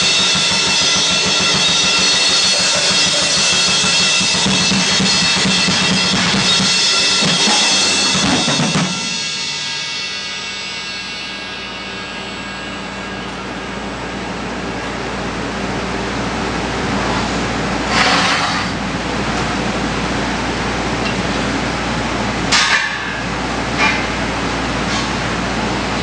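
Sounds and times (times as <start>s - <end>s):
sharp metallic cymbal hits: 0.0s - 15.0s
cymbal crash ringing: 0.0s - 16.4s.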